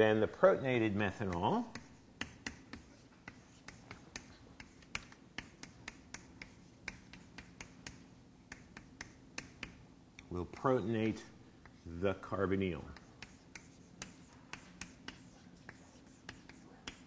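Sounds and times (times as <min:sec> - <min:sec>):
chalk tapping on blackboard: 0:01.0 - 0:09.9, 0:11.0 - 0:17.0.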